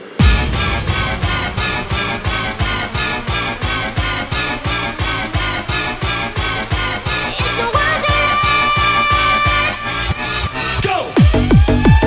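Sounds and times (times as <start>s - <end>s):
held synth chord: 0.0s - 11.8s
fast kick drum: 0.2s - 7.0s, 11.2s - 12.0s.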